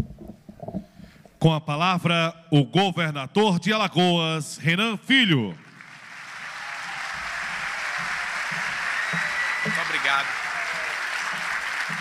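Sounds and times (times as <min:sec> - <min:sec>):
audience applauding: 0:05.6 - 0:12.0.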